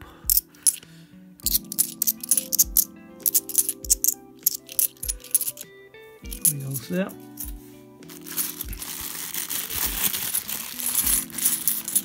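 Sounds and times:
background music: 0:00.0 - 0:12.0
coins clinking in the hand: 0:00.3 - 0:00.8, 0:01.4 - 0:05.7, 0:06.3 - 0:07.5, 0:08.1 - 0:12.0.

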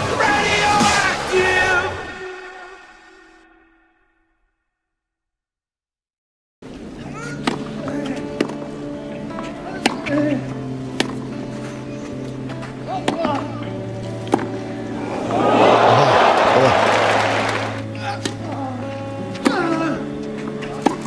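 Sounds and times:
background music with low chords: 0:06.7 - 0:21.0
racket hitting tennis ball: 0:14.2 - 0:14.6
crowd cheering and applauding: 0:15.0 - 0:17.9.

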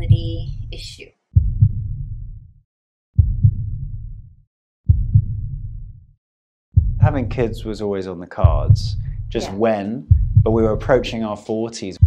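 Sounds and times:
booming heartbeat thumps: 0:00.0 - 0:00.8, 0:01.4 - 0:02.6, 0:03.2 - 0:06.1, 0:06.8 - 0:07.8, 0:08.4 - 0:11.2.

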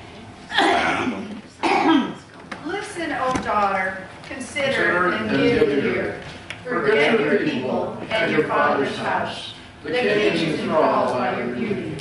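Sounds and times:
person coughing: 0:00.5 - 0:02.2
person clearing throat: 0:00.5 - 0:02.3.

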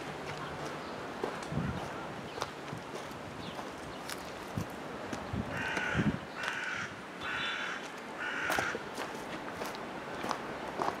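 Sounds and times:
crow cawing: 0:05.6 - 0:08.8.

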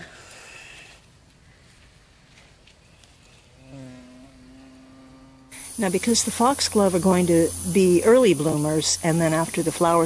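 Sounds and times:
flying insect buzzing: 0:03.5 - 0:10.0.

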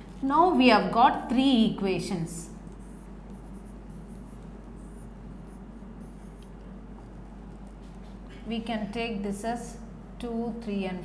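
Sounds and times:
low room hum: 0:00.0 - 0:11.0
marker pen on whiteboard: 0:01.9 - 0:09.4.

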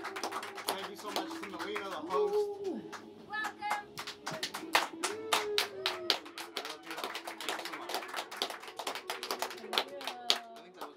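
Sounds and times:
small group applauding: 0:00.0 - 0:10.9.

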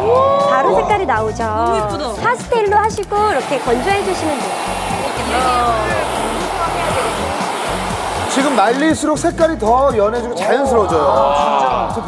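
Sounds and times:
background music: 0:00.0 - 0:12.0
hair dryer running: 0:03.1 - 0:09.0.

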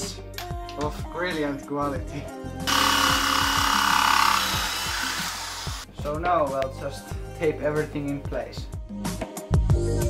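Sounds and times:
drill hole saw grinding metal: 0:02.7 - 0:05.9.

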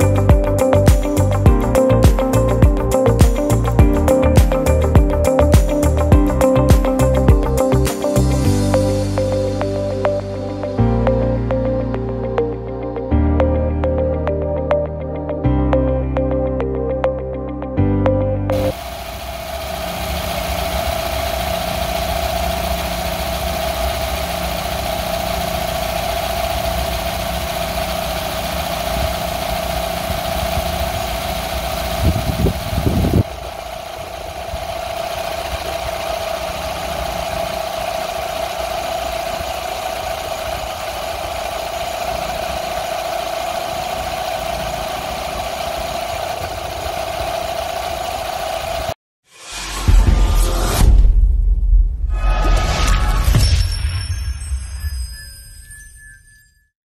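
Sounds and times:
constant hum: 0:18.5 - 0:49.0
car engine idling: 0:18.6 - 0:49.0.

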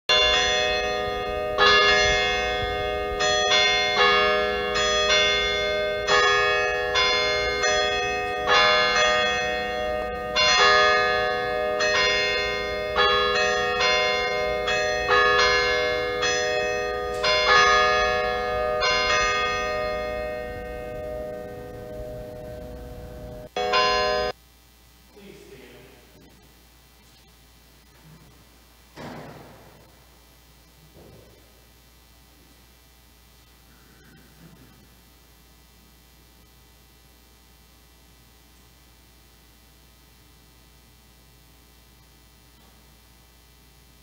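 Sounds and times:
church bells ringing: 0:00.1 - 0:24.4.

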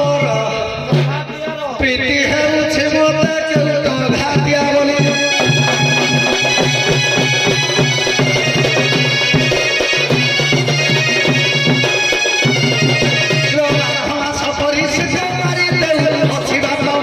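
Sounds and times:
barrel drum beating: 0:00.1 - 0:17.0
reedy wind instrument melody: 0:04.4 - 0:17.0.

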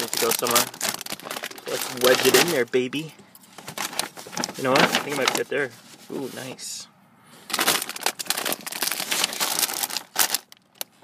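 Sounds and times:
packaging crinkling: 0:00.0 - 0:05.5, 0:07.5 - 0:11.0.

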